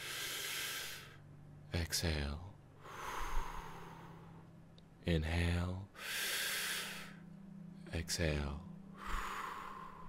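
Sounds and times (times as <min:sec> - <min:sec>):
man breathing in: 0:00.0 - 0:01.2, 0:02.8 - 0:04.4, 0:06.0 - 0:07.2, 0:08.9 - 0:10.0.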